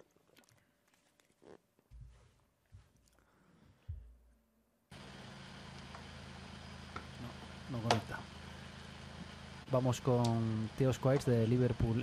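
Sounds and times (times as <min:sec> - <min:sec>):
electrical hum and hiss: 0:04.9 - 0:12.0
man speaking: 0:09.7 - 0:12.0.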